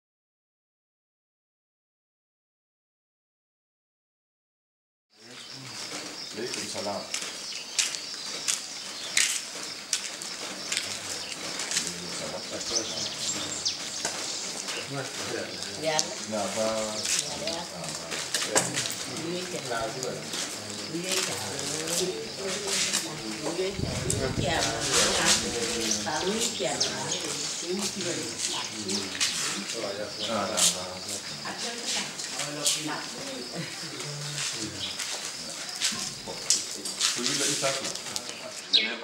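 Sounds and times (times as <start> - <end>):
people talking: 5.2 - 7.1, 10.7 - 39.0
high bird chirps: 10.4 - 16.2, 38.4 - 39.0.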